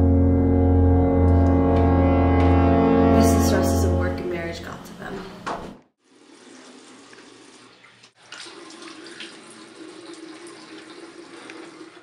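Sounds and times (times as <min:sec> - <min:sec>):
faucet running into sink: 0:06.0 - 0:12.0.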